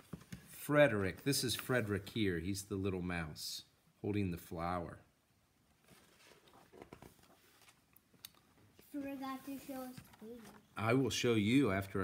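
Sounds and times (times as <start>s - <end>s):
paper page rustling: 5.8s - 7.9s, 9.0s - 10.7s.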